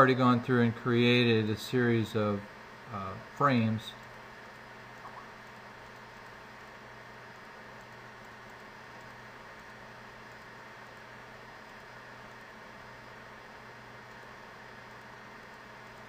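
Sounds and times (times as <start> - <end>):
faint hum: 0.0 - 16.0
steady low hiss: 0.0 - 16.0.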